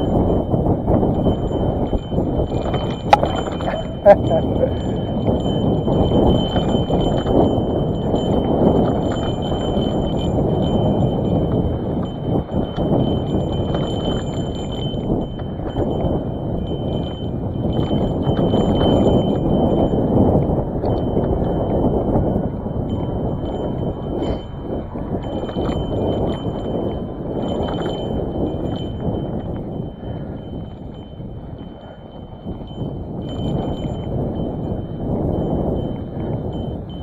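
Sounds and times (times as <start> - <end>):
bike clattering and rattling: 0.0 - 37.0.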